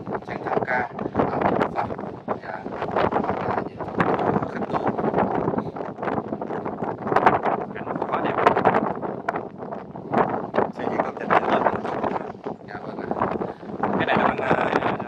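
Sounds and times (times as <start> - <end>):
person talking indistinctly: 0.0 - 6.8, 7.6 - 8.7, 10.6 - 15.0
wind buffeting microphone: 0.0 - 15.0.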